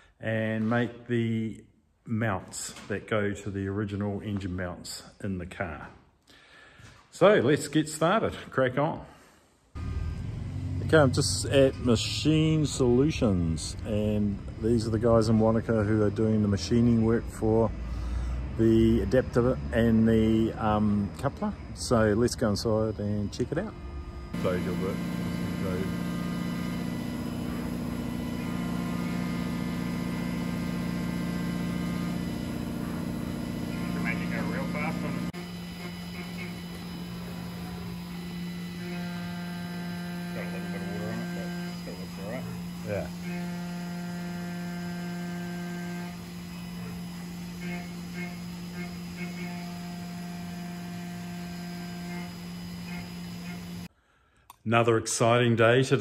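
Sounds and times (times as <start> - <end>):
milling machine cutting metal: 18.4 - 53.9.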